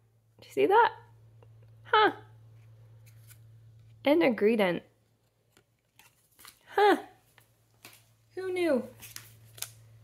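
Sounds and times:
low steady hum: 0:00.0 - 0:10.0
trading cards scraping and rustling: 0:02.5 - 0:04.0, 0:05.1 - 0:06.6, 0:08.9 - 0:09.9.

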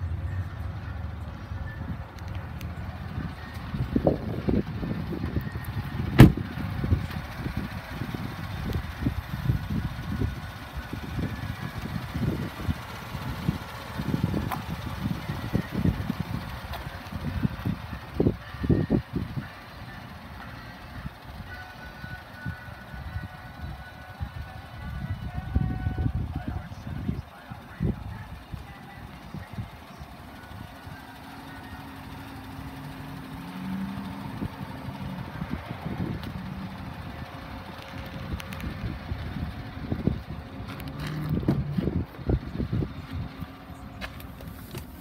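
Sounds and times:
wind buffeting microphone: 0:03.1 - 0:19.4.

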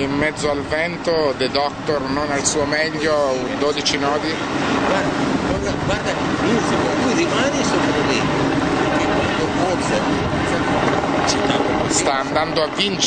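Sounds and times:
indistinct talk: 0:00.0 - 0:13.0
wind buffeting microphone: 0:00.0 - 0:13.0.

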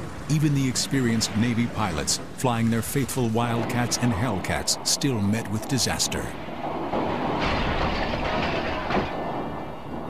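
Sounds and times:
aircraft engine rumble: 0:00.0 - 0:10.0.

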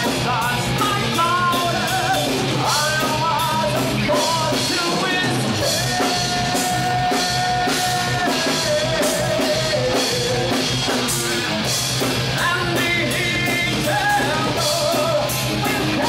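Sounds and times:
rock band playing: 0:00.0 - 0:16.0.

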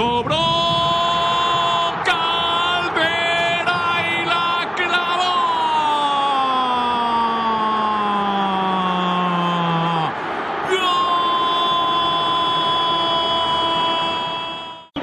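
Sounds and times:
commentator shouting goal cry: 0:00.0 - 0:15.0
stadium crowd noise: 0:00.0 - 0:15.0.

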